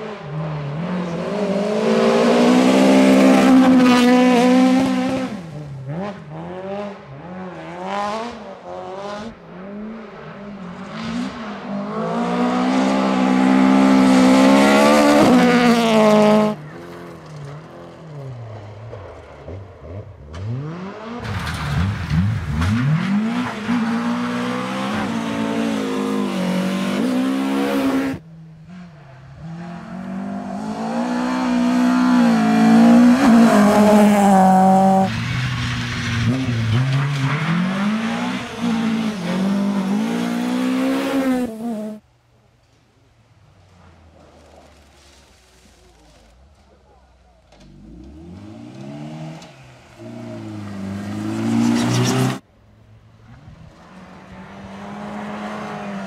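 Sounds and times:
rally car engines revving: 0:00.0 - 0:42.0, 0:47.4 - 0:52.5, 0:53.2 - 0:56.0
gravel hissing under tyres: 0:43.4 - 0:47.0.

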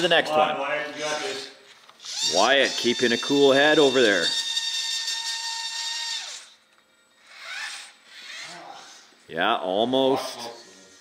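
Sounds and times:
small electric motor whining: 0:00.9 - 0:09.3, 0:10.0 - 0:11.0.

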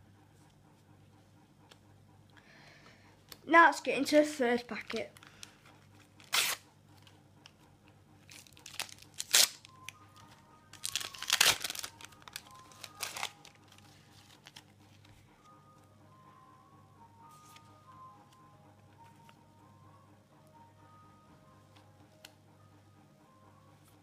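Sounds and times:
sticker packet tearing open: 0:06.2 - 0:06.7, 0:08.3 - 0:09.7, 0:10.8 - 0:14.7
stickers being pulled out: 0:06.2 - 0:06.7, 0:10.8 - 0:14.6
wrapper crinkling: 0:08.3 - 0:14.9.

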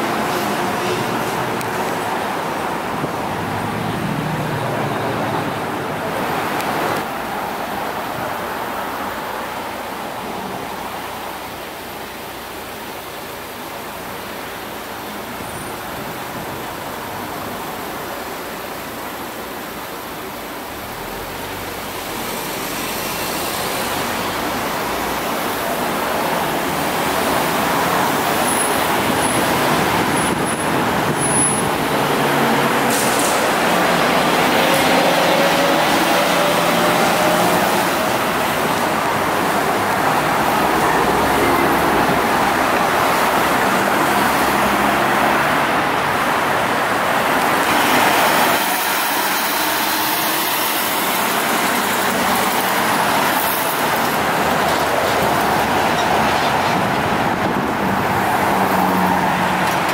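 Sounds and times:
electric trolleybus whine: 0:00.0 - 0:59.9
street traffic: 0:00.0 - 0:59.9.

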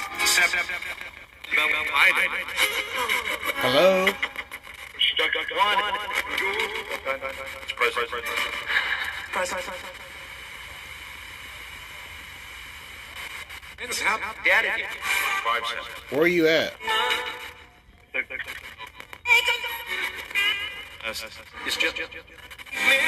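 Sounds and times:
steady static hiss: 0:00.0 - 0:23.0
chopped radio voice fragments: 0:02.5 - 0:08.4, 0:15.9 - 0:16.8.

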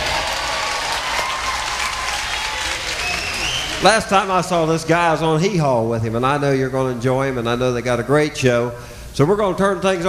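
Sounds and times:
audience applauding: 0:00.0 - 0:04.2.

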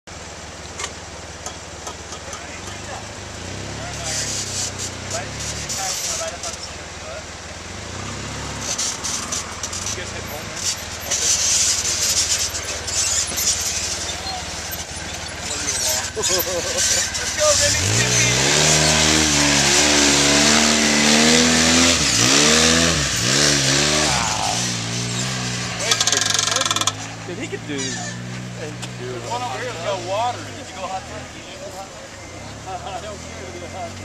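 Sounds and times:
vehicle engine revving: 0:02.4 - 0:34.0.

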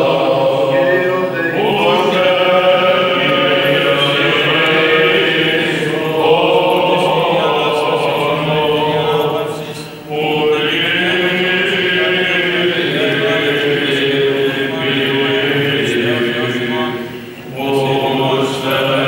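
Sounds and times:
men chanting: 0:00.0 - 0:19.0.

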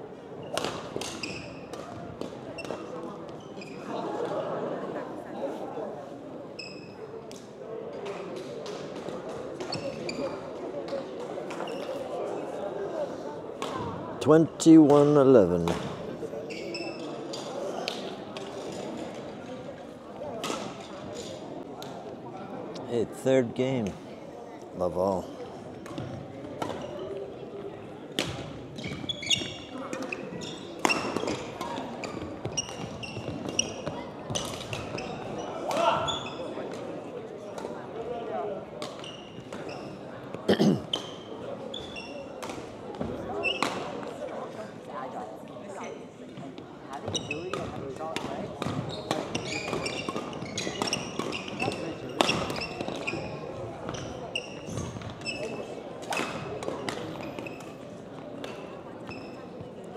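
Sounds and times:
shoes squeaking on court floor: 0:00.3 - 0:04.1, 0:06.5 - 0:07.2, 0:09.6 - 0:12.6, 0:14.9 - 0:19.7, 0:25.2 - 0:37.8, 0:38.8 - 0:44.5, 0:45.7 - 0:59.9
racket hitting shuttlecock: 0:00.5 - 0:02.8, 0:47.5 - 0:53.2
rackets striking shuttlecock: 0:00.5 - 0:02.8.

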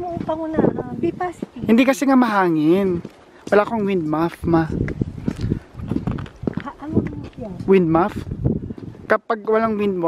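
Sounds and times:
footsteps on sidewalk: 0:00.0 - 0:10.0
wind buffeting microphone: 0:00.0 - 0:10.0.

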